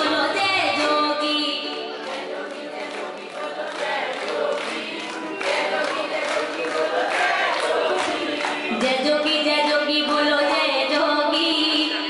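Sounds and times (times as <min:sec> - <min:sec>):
keyboard accompaniment: 0:00.0 - 0:12.0
congregation singing devotional song: 0:01.9 - 0:09.2.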